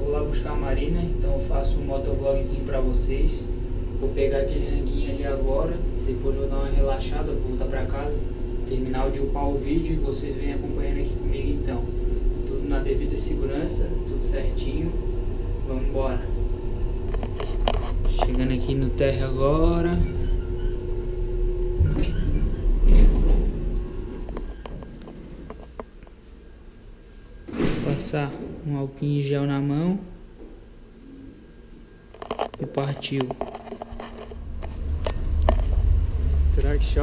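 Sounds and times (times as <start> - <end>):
elevator low hum: 0.0 - 37.0.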